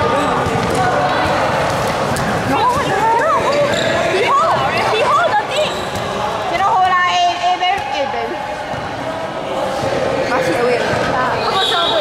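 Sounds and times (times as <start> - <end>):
players shouting and calling: 0.0 - 12.0
basketball bouncing: 0.1 - 8.1
shoes squealing on court: 3.4 - 4.7, 5.3 - 6.2.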